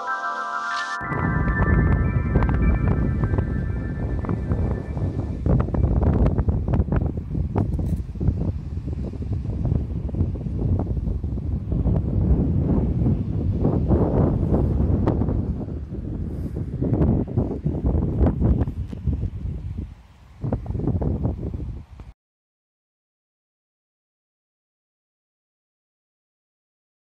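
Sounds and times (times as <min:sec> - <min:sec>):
chiming tune: 0:00.0 - 0:06.0
wind buffeting microphone: 0:01.0 - 0:22.1.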